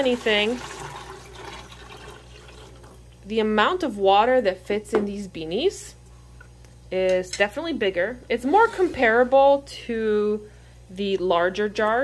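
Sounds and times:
water pouring into a jar: 0.0s - 3.0s.

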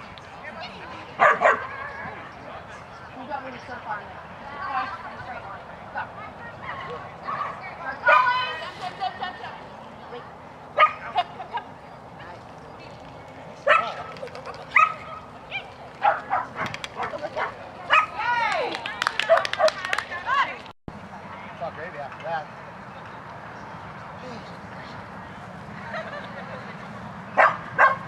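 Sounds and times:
dog barking and yipping: 14.7s - 15.3s, 16.0s - 18.2s, 27.4s - 28.0s.

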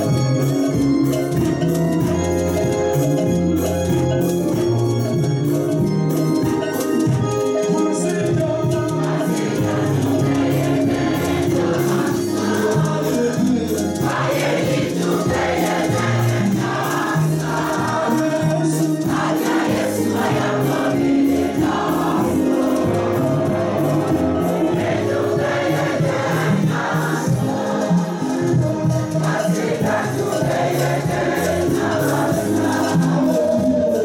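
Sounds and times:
instrumental backing with beat: 0.0s - 34.0s
choir singing gospel song: 7.6s - 34.0s.

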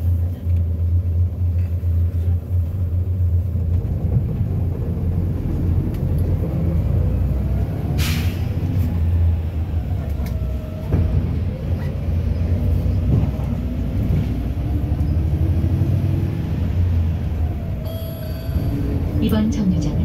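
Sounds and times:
bus engine and road rumble: 0.0s - 20.0s
bus bump: 10.0s - 14.7s
faint whine: 17.8s - 19.8s.

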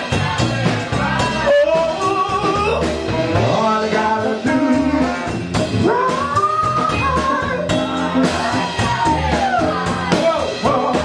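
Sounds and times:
soul band playing: 0.0s - 11.0s.

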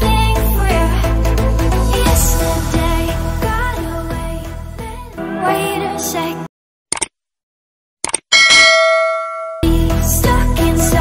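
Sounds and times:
notification bell ding: 8.3s - 9.7s.

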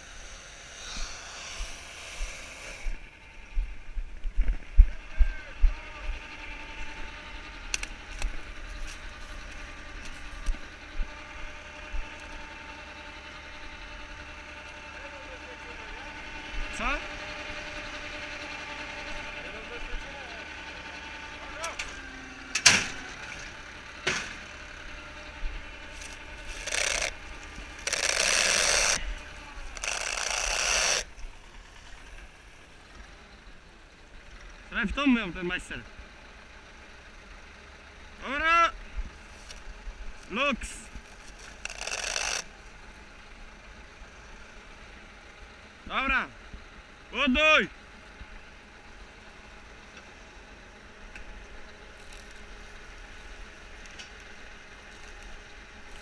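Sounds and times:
loud bursts of noise: 0.0s - 3.4s
tractor diesel engine running: 0.0s - 56.0s.

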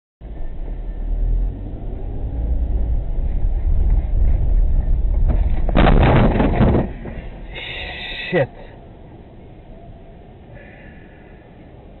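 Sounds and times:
car engine rumble: 0.2s - 12.0s
road noise: 0.2s - 12.0s.

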